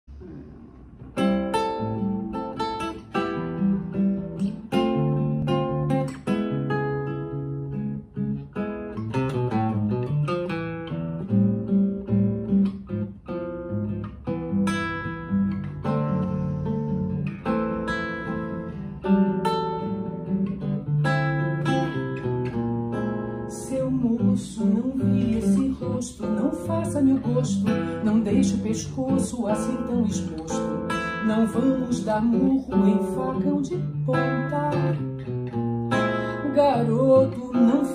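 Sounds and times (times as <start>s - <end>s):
classical guitar playing samba: 0.1s - 37.9s.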